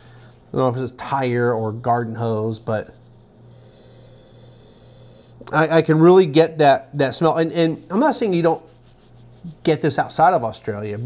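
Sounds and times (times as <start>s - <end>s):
low electrical hum: 0.0s - 11.0s
man sniffing through nose: 3.4s - 5.5s.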